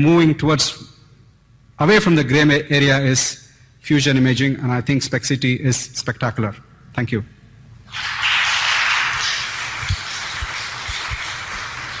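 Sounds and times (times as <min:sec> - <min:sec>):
audience applauding: 0:07.9 - 0:12.0.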